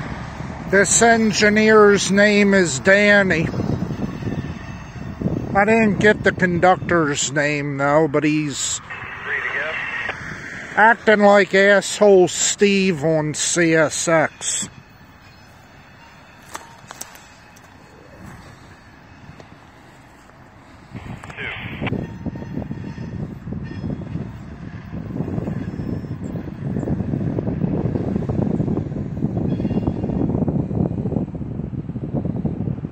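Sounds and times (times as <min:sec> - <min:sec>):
wind buffeting microphone: 0:00.0 - 0:32.9.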